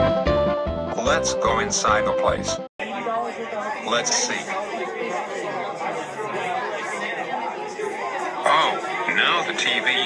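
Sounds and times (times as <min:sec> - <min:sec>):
crowd chatter: 0:01.0 - 0:10.0.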